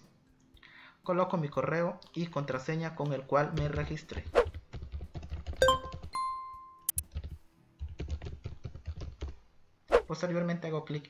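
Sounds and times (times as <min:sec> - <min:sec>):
typing on computer keyboard: 0:03.6 - 0:06.2, 0:06.9 - 0:09.4.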